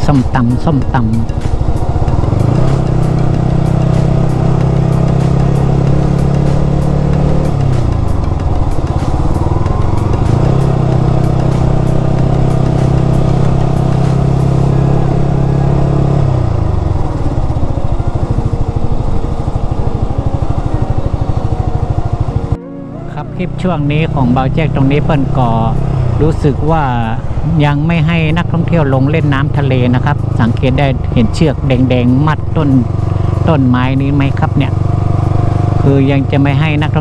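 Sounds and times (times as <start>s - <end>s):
motorcycle engine running: 0.0s - 37.0s.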